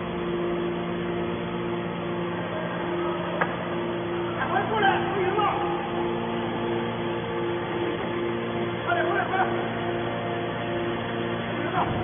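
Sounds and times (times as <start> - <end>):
hydraulic power unit humming: 0.0 - 12.0.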